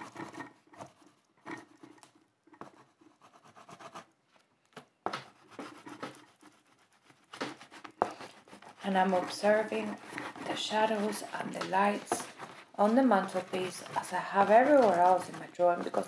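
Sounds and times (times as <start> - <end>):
pastel stroking on paper: 0.0 - 4.0, 5.1 - 16.0.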